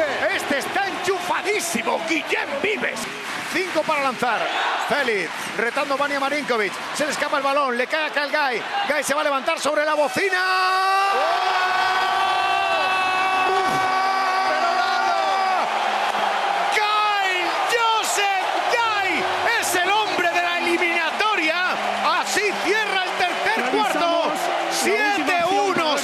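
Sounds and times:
arena crowd cheering: 0.0 - 26.0
shouts and whoops: 7.2 - 26.0
commentator yelling: 16.7 - 26.0.

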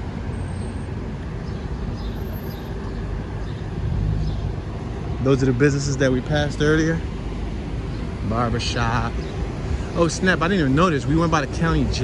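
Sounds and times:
city street traffic hum: 0.0 - 12.0.

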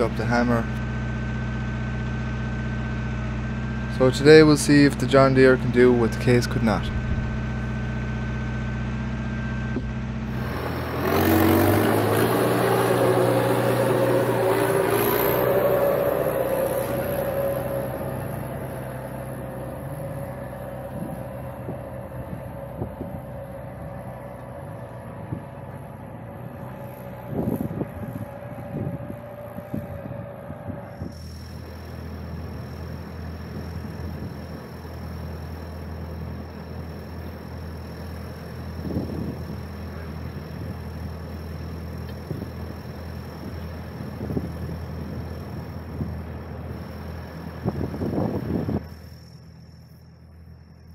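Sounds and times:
loud engine: 0.0 - 50.9
tractor idling: 0.0 - 50.9.

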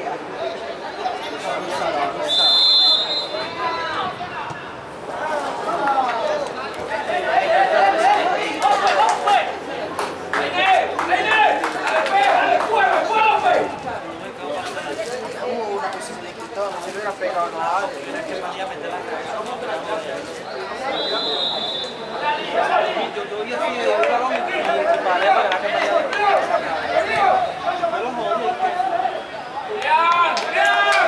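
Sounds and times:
voices calling out: 0.0 - 31.0
referee whistle blast: 2.2 - 3.5, 20.9 - 22.0.

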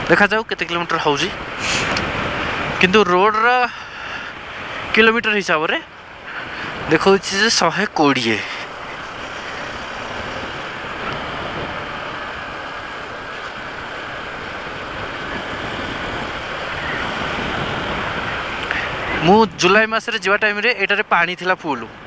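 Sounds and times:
wind and road noise on motorcycle: 0.0 - 22.0.

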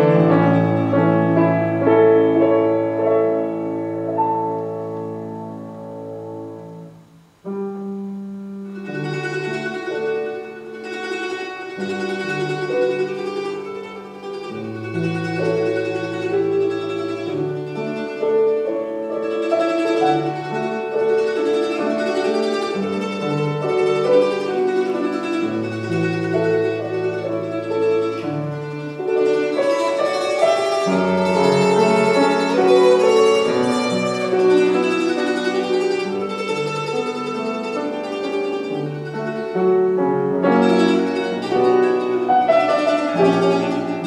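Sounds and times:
piano accompaniment: 0.0 - 44.0
plucked string melody: 0.0 - 44.0.

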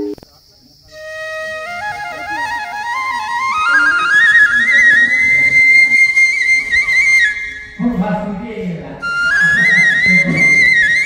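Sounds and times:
voices: 0.0 - 11.0
flute melody: 0.9 - 7.9, 9.0 - 11.0.

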